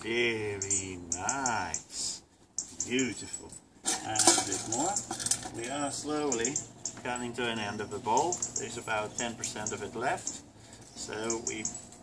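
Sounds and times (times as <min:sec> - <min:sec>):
dry food clinking in metal bowl: 0:03.0 - 0:07.5.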